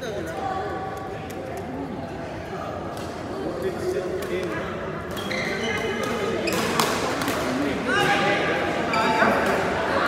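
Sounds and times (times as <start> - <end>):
shoes squeaking on hall floor: 5.1 - 6.9, 8.9 - 9.6
racket hitting shuttlecock: 6.0 - 8.1.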